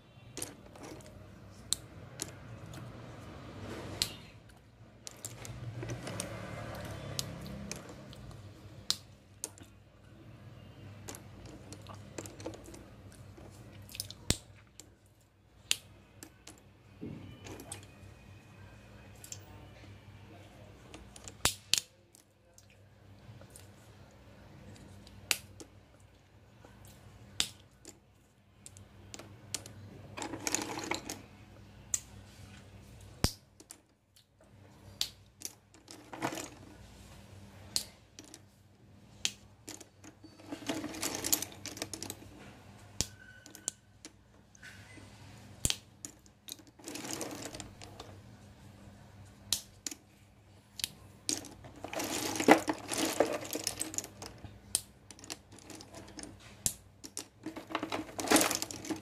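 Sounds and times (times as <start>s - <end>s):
slate pencils clicking and rattling: 0.4s - 3.0s, 4.0s - 9.8s, 11.0s - 15.0s, 28.7s - 31.2s, 35.0s - 36.9s, 37.8s - 38.6s, 39.3s - 44.6s, 45.6s - 48.2s, 50.8s - 59.0s.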